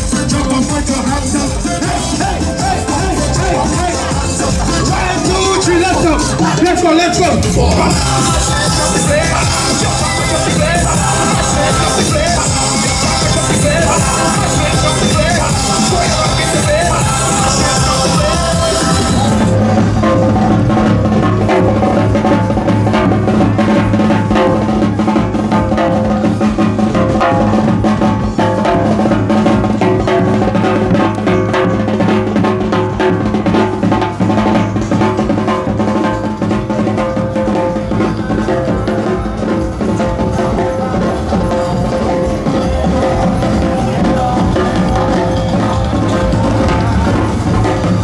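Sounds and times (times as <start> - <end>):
bass drum beating: 0.0 - 48.0
loud recorded music: 0.0 - 48.0
kettle drum beating: 1.5 - 48.0
steady held tones: 1.6 - 48.0.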